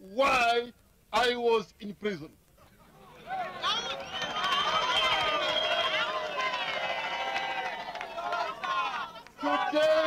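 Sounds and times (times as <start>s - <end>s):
crowd cheering: 2.8s - 10.0s.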